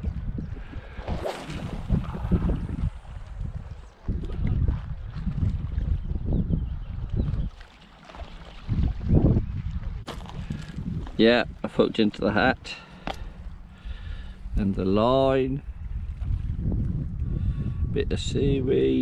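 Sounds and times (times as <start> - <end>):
wind buffeting microphone: 0.0 - 7.6, 8.2 - 19.0.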